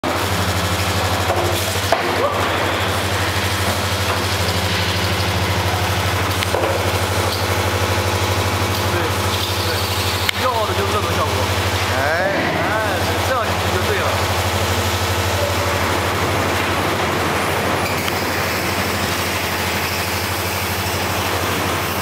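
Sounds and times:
welder electrical buzz: 0.0 - 22.0.

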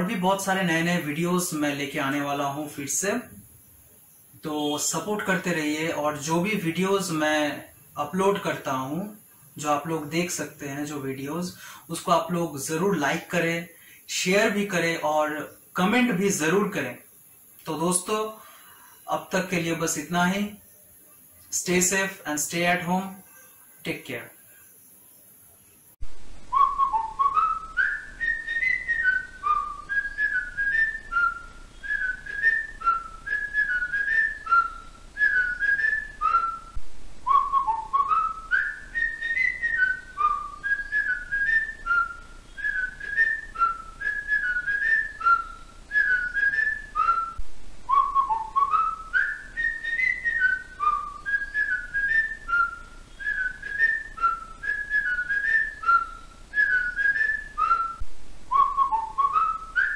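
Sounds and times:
whistled melody: 26.5 - 59.9.

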